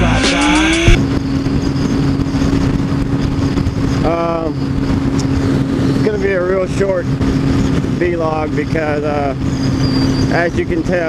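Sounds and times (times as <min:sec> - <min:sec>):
motorcycle engine hum: 0:00.0 - 0:11.0
wind rush on microphone: 0:00.7 - 0:11.0.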